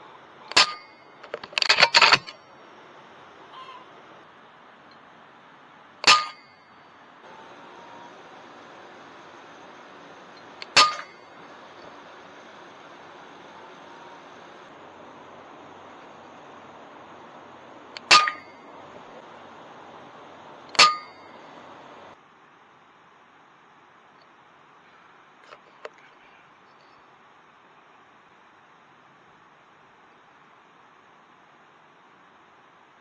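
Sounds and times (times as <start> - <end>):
metallic ring: 0.5 - 2.5, 6.0 - 7.0, 10.3 - 12.0, 18.0 - 18.8, 20.7 - 21.7
faint hiss: 2.3 - 33.0.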